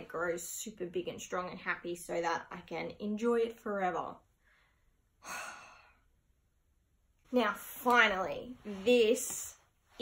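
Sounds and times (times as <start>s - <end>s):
woman sighing: 5.2s - 6.0s.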